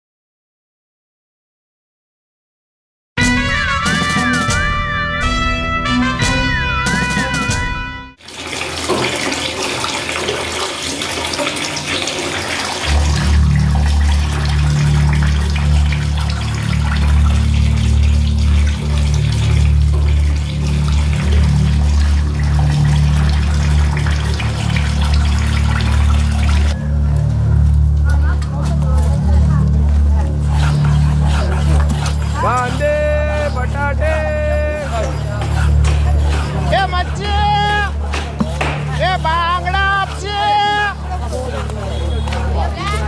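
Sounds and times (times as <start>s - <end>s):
water running and splashing: 8.2s - 43.0s
low heavy music drone: 12.8s - 41.2s.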